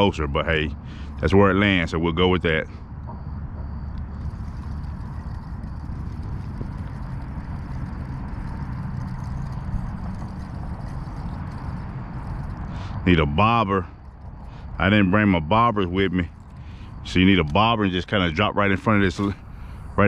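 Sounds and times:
wind buffeting microphone: 0:02.9 - 0:20.0.

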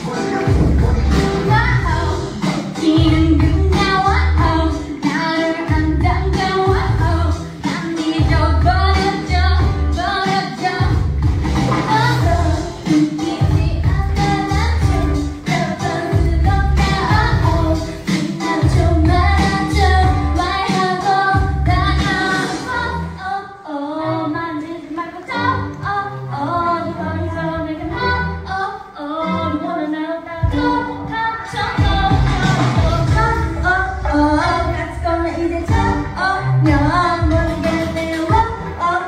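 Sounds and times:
heavy bass beat: 0:00.0 - 0:04.8, 0:05.7 - 0:07.4, 0:31.6 - 0:38.6
pop backing track with bass: 0:00.0 - 0:39.0
woman singing: 0:01.4 - 0:11.1, 0:11.8 - 0:39.0.

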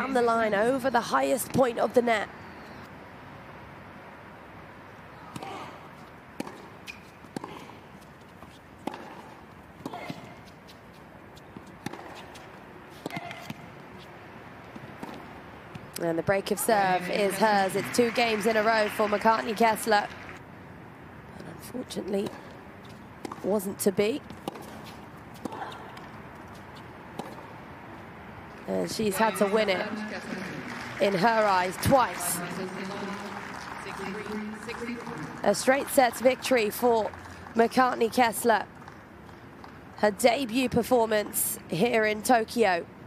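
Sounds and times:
rackets striking tennis ball: 0:06.4 - 0:10.8, 0:11.4 - 0:14.1, 0:22.2 - 0:27.6.

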